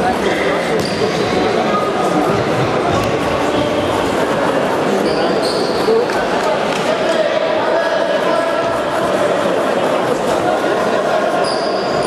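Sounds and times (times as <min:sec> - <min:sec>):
shoe squeaks: 0:05.0 - 0:06.1, 0:11.4 - 0:12.0.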